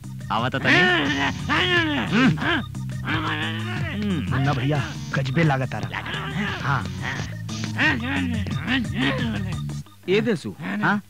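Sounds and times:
squawking sounds: 0.6s - 9.8s.

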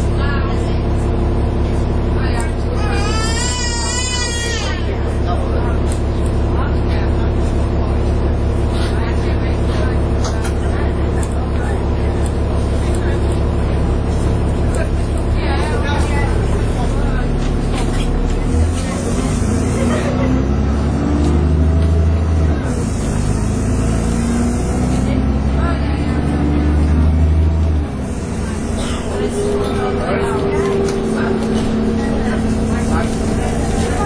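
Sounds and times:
bus engine droning: 0.0s - 34.0s.

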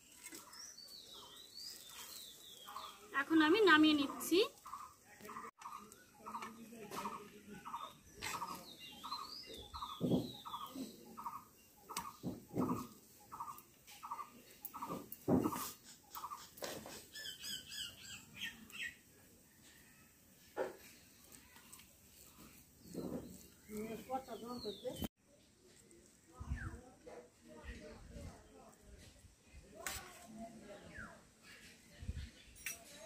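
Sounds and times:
bird chirps: 4.6s - 19.0s.

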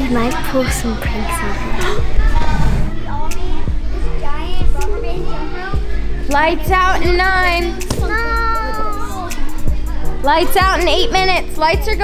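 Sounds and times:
background music: 0.0s - 12.0s
children chattering and calling: 0.0s - 12.0s.

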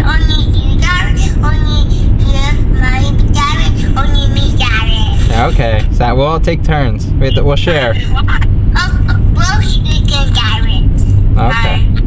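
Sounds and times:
child's voice over phone speaker: 0.0s - 5.6s, 8.0s - 11.9s
car road and engine rumble: 0.0s - 12.0s.

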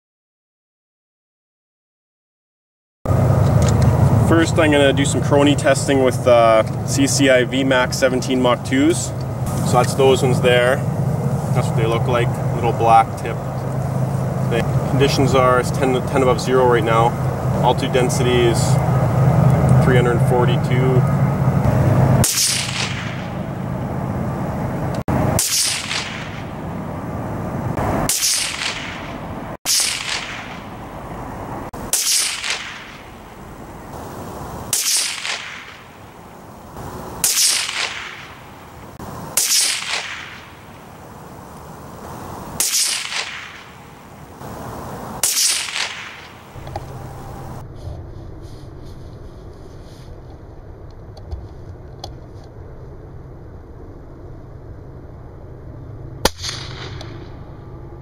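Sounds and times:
rifle shots: 22.2s - 23.5s, 25.1s - 26.7s, 28.0s - 30.8s, 31.8s - 33.4s, 34.7s - 38.7s, 39.4s - 41.0s, 42.4s - 47.6s, 56.2s - 57.4s.

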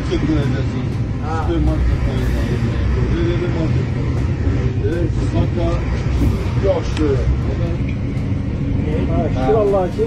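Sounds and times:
men talking: 0.0s - 10.0s
vehicle engine and road noise: 0.0s - 10.0s.

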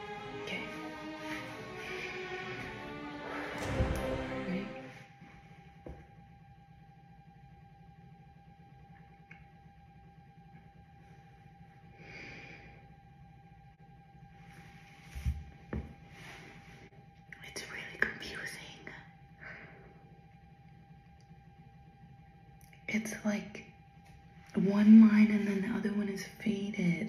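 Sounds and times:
faint steady hum: 0.0s - 27.0s
woman whispering: 17.3s - 19.2s.

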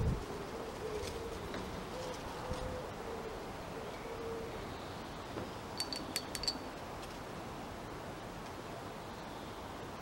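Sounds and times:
pigeon cooing: 0.2s - 4.6s
light ringing clinks: 5.8s - 6.8s.

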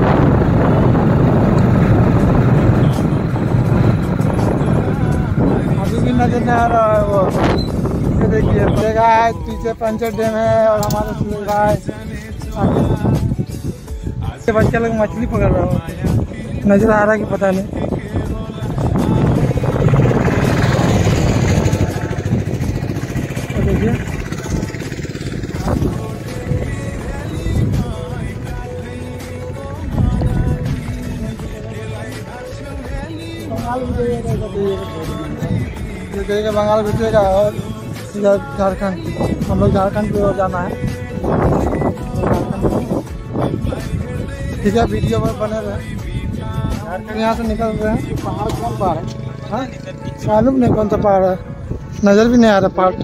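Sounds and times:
motorbike engine running: 0.0s - 13.3s, 17.8s - 42.1s
road noise: 0.0s - 53.0s
wind rushing over microphone: 0.0s - 53.0s
vehicle passing close: 18.8s - 32.1s.

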